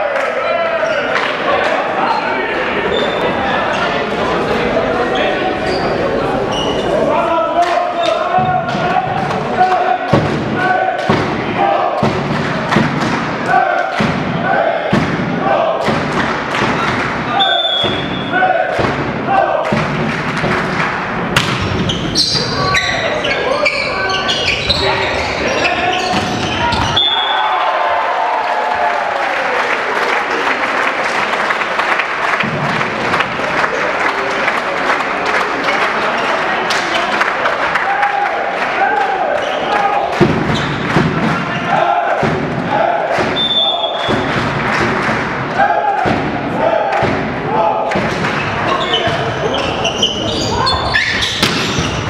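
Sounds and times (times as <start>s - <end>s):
players shouting: 0.0s - 12.7s, 13.3s - 15.9s, 16.7s - 19.9s, 21.7s - 30.7s, 35.2s - 52.0s
crowd din: 0.0s - 52.0s
volleyball strikes and thuds: 12.0s - 17.2s, 17.8s - 21.9s, 40.2s - 41.5s, 42.2s - 45.4s, 46.0s - 46.4s, 51.3s - 52.0s.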